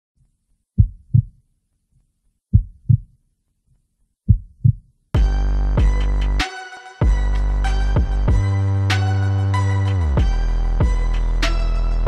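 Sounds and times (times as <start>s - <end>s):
heartbeat double thumps: 0.8s - 1.4s, 2.5s - 3.2s, 4.3s - 6.0s, 8.0s - 8.5s
loud music: 5.2s - 12.0s.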